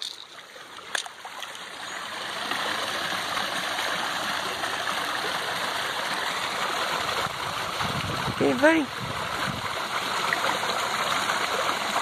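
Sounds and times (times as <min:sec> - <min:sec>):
rushing water: 0:00.0 - 0:12.0.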